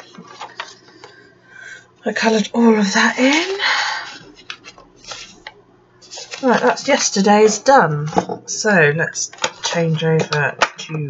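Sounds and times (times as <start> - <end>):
paper pages turning: 0.0 - 1.2, 3.2 - 7.2.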